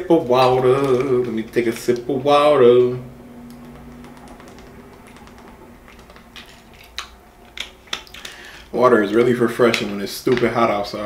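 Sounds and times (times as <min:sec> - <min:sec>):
plastic bottle crackling: 0:00.0 - 0:11.0.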